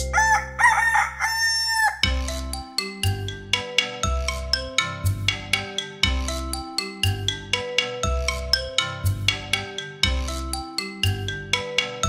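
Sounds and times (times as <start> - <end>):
rooster crowing: 0.0 - 2.2.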